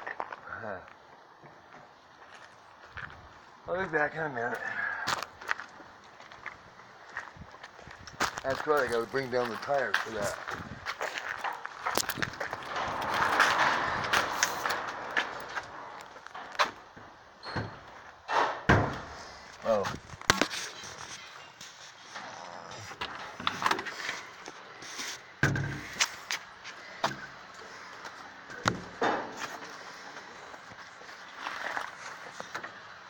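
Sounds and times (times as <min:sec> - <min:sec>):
footsteps on concrete: 0:05.1 - 0:12.6.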